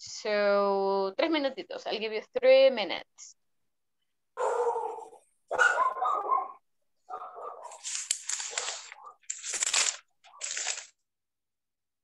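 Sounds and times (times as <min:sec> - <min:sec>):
dog barking: 0:04.4 - 0:07.8.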